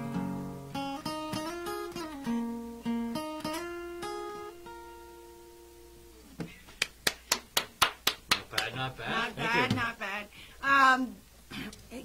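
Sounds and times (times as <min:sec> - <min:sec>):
acoustic guitar chord: 0:00.0 - 0:06.2
hand clapping: 0:06.4 - 0:08.8.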